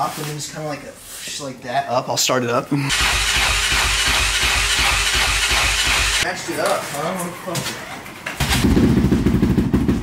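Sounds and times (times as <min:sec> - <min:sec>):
dirt bike engine running: 0:02.9 - 0:06.2, 0:08.5 - 0:10.0.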